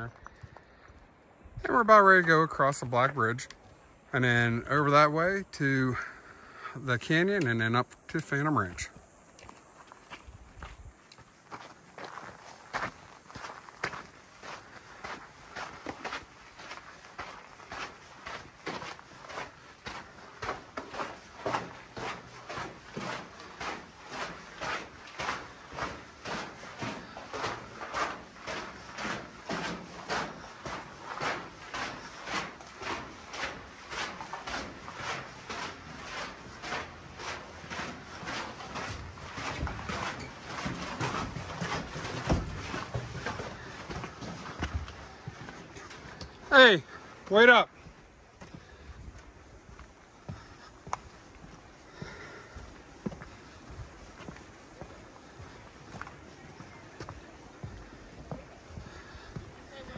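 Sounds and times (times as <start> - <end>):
footsteps on gravel trail: 0.0 - 59.9.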